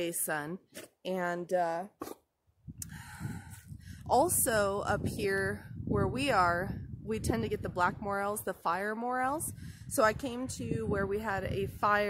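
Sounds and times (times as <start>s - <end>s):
short breathy snort: 2.0s - 2.2s
low rumble: 2.6s - 8.6s.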